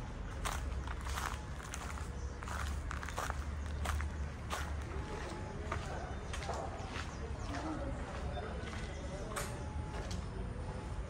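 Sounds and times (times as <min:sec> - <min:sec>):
footsteps walking: 0:00.3 - 0:10.2.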